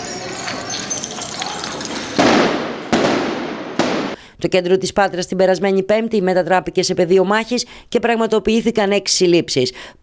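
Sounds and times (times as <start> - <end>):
loud explosive bangs: 2.1 - 4.2.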